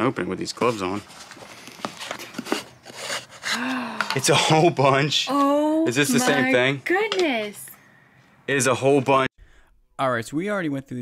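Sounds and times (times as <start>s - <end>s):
wooden lid scraping in grooves: 0.6s - 4.4s.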